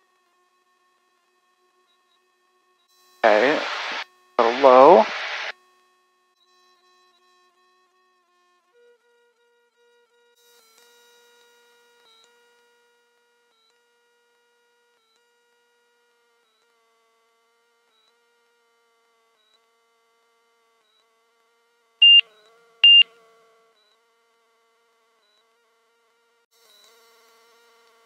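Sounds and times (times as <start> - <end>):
faint steady hum: 3.2 - 5.5, 22.0 - 22.2
high electronic beeps: 22.0 - 22.2, 22.8 - 23.0.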